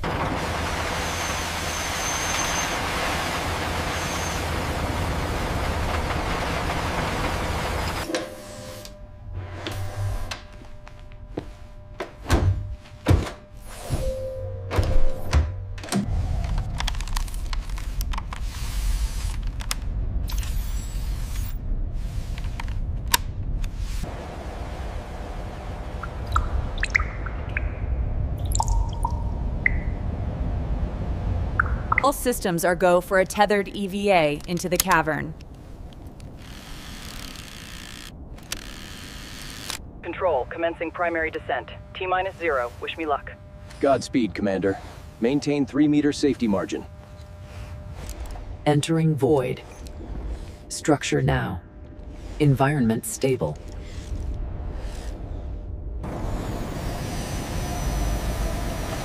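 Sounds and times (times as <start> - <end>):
drilling rig hiss and rumble: 16.0 - 26.1, 30.4 - 40.4, 53.6 - 59.0.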